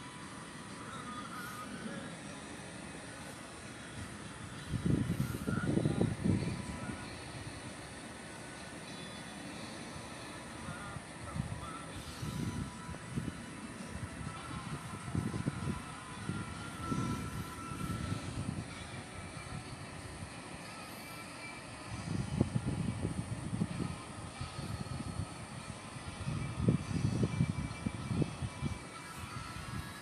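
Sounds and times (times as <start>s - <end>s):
faint background noise: 0.0s - 30.0s
wind buffeting microphone: 4.0s - 7.6s, 10.6s - 20.3s, 21.9s - 30.0s.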